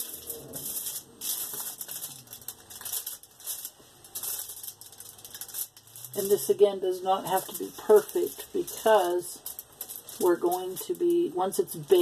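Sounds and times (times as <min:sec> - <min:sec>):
foil crinkling: 0:00.0 - 0:12.0.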